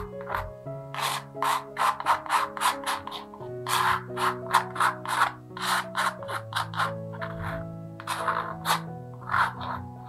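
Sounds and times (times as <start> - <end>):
palette knife scraping paint on canvas: 0.0 - 10.0.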